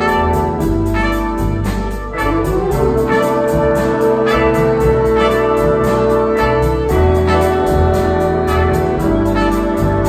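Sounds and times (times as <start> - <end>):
jazz big band playing: 0.0 - 10.0
piano: 0.0 - 10.0
trumpets and saxophones chords: 0.0 - 10.0
upright bass: 0.0 - 10.0.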